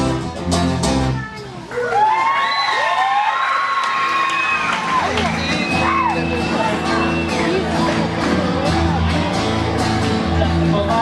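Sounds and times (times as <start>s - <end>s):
children shrieking and cheering: 1.7s - 6.8s.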